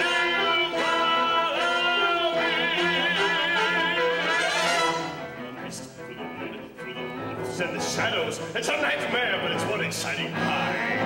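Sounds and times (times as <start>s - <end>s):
orchestra playing held notes: 0.0s - 11.0s
strings: 0.0s - 11.0s.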